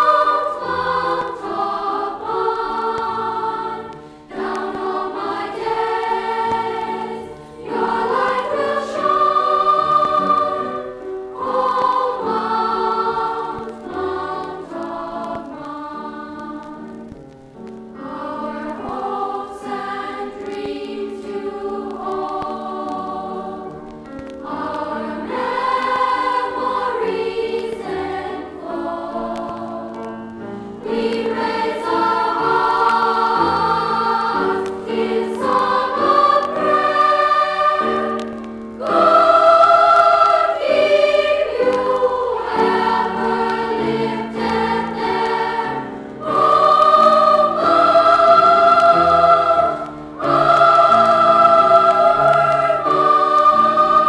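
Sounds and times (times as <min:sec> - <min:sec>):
choir singing held chords: 0:00.0 - 0:54.0.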